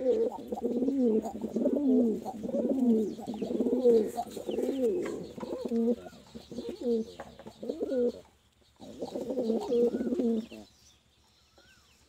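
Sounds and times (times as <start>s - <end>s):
pigeon cooing: 0.0s - 10.7s
faint bird chirps: 0.0s - 12.0s.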